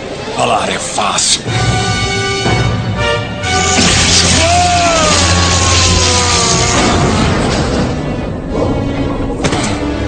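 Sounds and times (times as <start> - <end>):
dramatic background music: 0.0 - 10.0
electric shock crackling hiss: 3.5 - 7.2
man groaning: 4.3 - 7.0.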